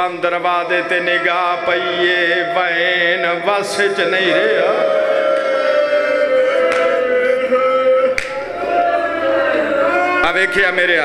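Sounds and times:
man chanting a long note: 0.0s - 4.9s.

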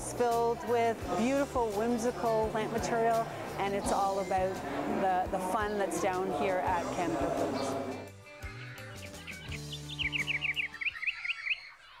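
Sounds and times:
high bird chirps: 8.5s - 12.0s.

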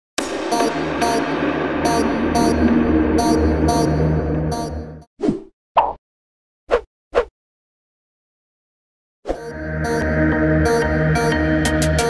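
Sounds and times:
background music: 0.2s - 5.1s, 9.4s - 12.0s.

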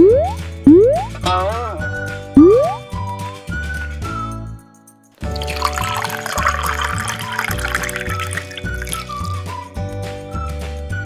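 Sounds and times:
music with bass and whistle melody: 0.0s - 11.0s
milk pouring into blender jar: 5.2s - 9.5s.

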